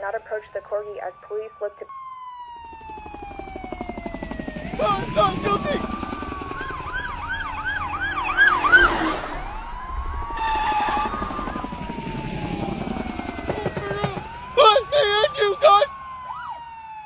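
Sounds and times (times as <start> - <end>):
police siren wailing and yelping: 0.0 - 17.0
loud rush of noise: 8.1 - 12.7.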